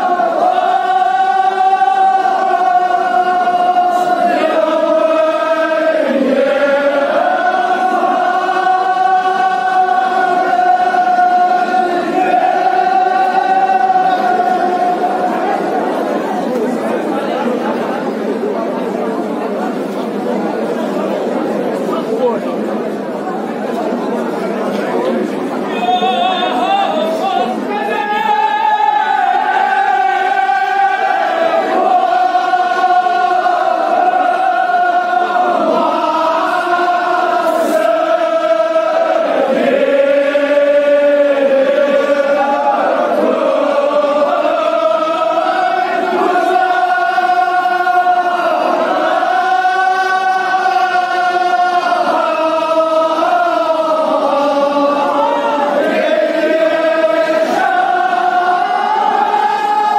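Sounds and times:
men chanting in unison: 0.0s - 15.9s, 26.1s - 59.9s
overlapping voices: 0.0s - 59.9s.

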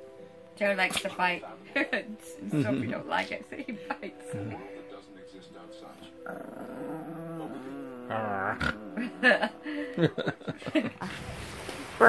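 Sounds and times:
small dog growling: 6.2s - 9.6s.

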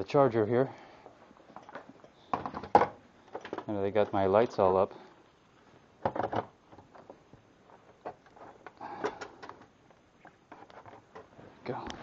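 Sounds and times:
plastic clicks and clatter: 1.6s - 4.2s.

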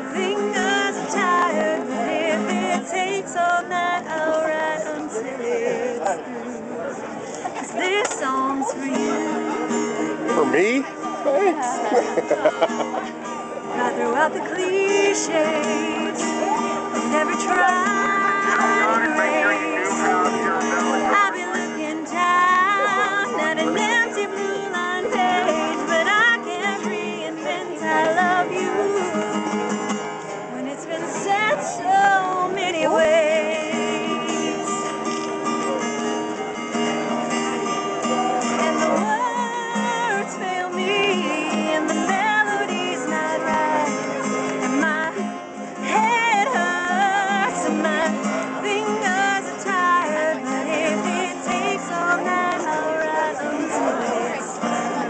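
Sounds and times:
woman singing: 0.0s - 6.2s, 7.6s - 10.2s, 13.7s - 20.1s, 20.9s - 29.7s, 30.5s - 35.3s, 38.4s - 55.0s
acoustic guitar strumming: 0.0s - 55.0s.

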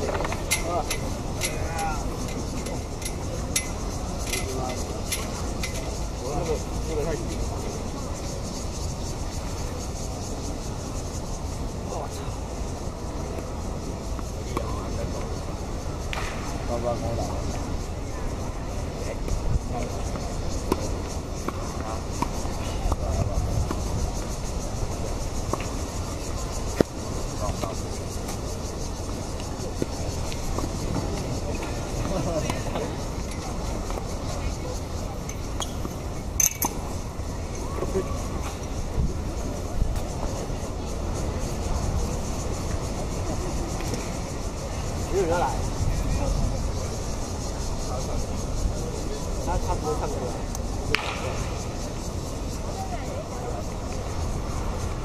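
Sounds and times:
faint voices chatting: 0.0s - 55.0s
tennis balls struck by rackets: 14.1s - 14.8s, 16.1s - 16.6s, 20.6s - 23.9s, 26.7s - 28.4s, 50.9s - 51.5s.

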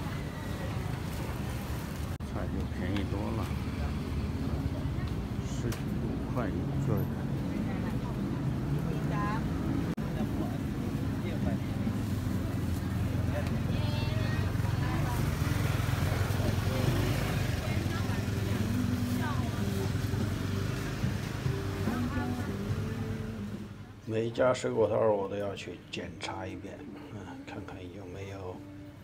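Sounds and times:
people talking: 6.4s - 20.3s.

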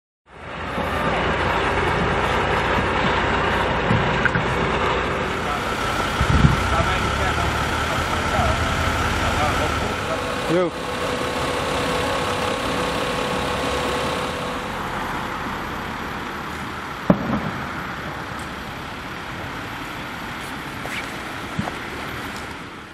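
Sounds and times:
engines idling: 0.3s - 22.9s
people talking: 5.2s - 14.7s.

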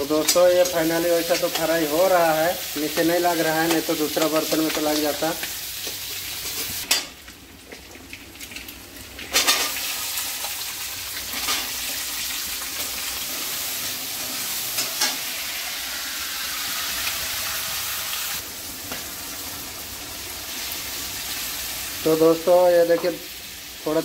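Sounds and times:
food sizzling in hot oil: 0.0s - 24.0s.

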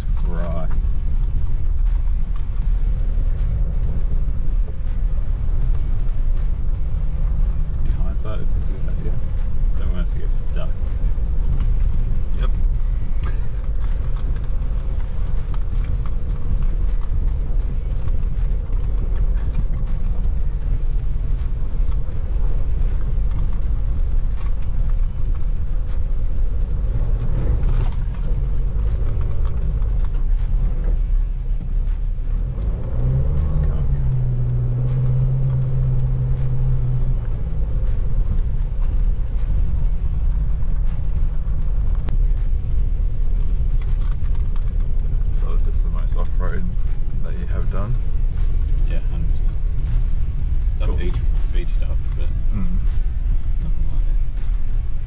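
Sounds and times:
engine and tyres rumbling: 0.0s - 55.0s
music: 0.0s - 55.0s
small clicks and rattles: 4.9s - 55.0s.

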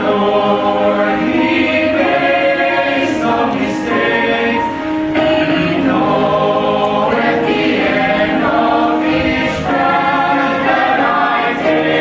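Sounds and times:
mixed choir singing in harmony: 0.0s - 12.0s.

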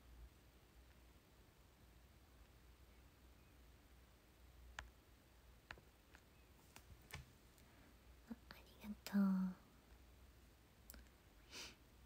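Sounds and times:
woman's breathy exhale: 11.5s - 11.8s.

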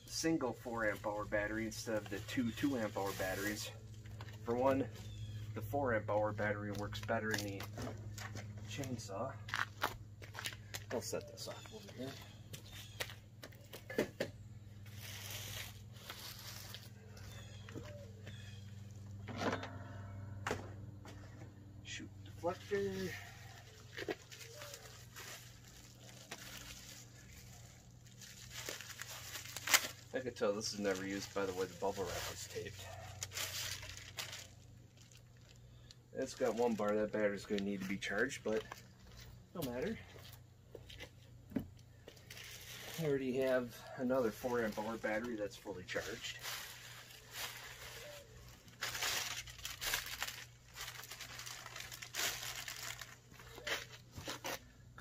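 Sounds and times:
plastic packaging crinkling: 14.8s - 19.1s, 22.5s - 39.3s, 42.0s - 54.7s
sharp crackles: 22.4s - 37.9s.

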